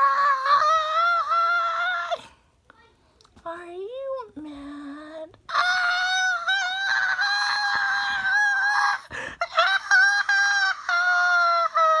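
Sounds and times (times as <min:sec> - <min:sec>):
person screeching: 0:05.5 - 0:11.8.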